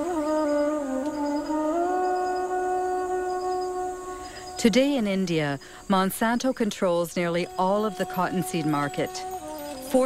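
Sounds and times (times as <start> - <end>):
held wind instrument note: 0.0 - 4.8, 7.4 - 10.0.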